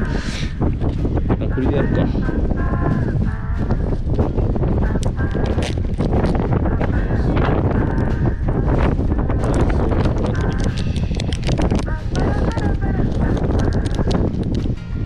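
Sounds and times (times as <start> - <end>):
wind buffeting microphone: 0.0 - 15.0
plastic package crinkling and clicking: 10.1 - 14.7.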